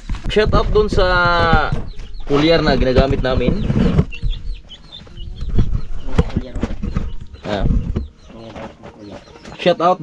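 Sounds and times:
low thumps: 0.0s - 9.6s
chickens clucking: 0.1s - 10.0s.

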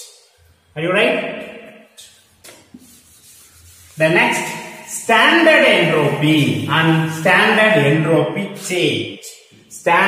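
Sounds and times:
duster wiping a chalkboard: 1.9s - 8.8s.

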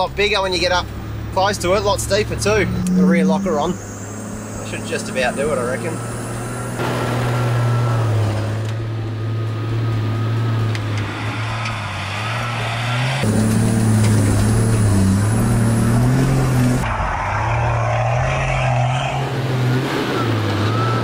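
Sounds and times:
engine labouring: 0.0s - 21.0s.

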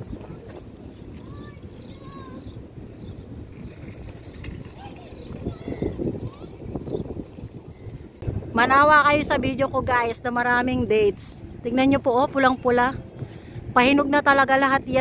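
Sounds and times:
wind on microphone: 0.0s - 15.0s.

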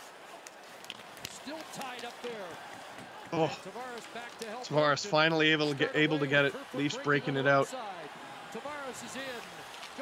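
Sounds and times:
quiet sports commentary: 0.1s - 10.0s.

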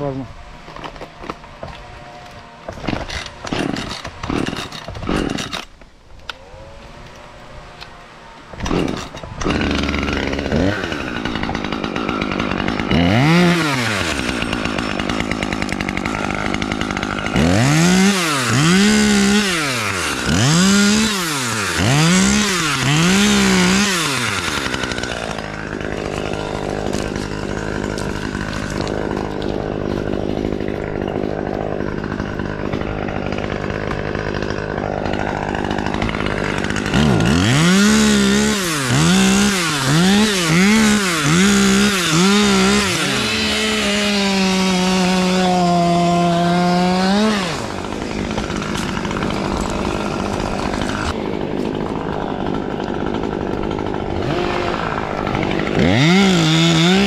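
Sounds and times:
chainsaw idling and revving: 0.0s - 57.0s.

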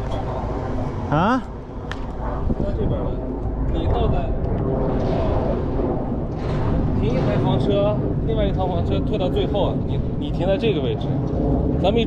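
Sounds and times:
steady low rumble: 0.0s - 12.0s
people talking indistinctly: 1.1s - 1.5s, 2.5s - 12.0s.

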